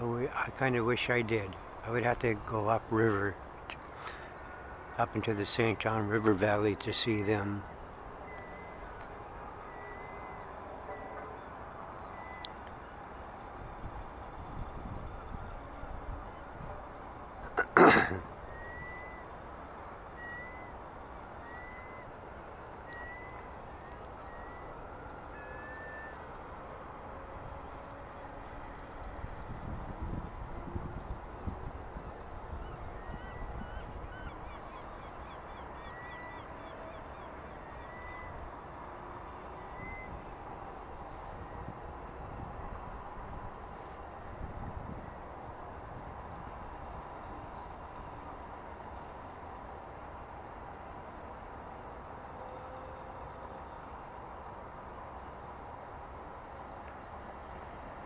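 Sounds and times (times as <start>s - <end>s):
steady outdoor hiss: 0.0s - 58.0s
short high bird calls: 17.5s - 19.3s, 20.2s - 22.2s, 22.8s - 26.4s.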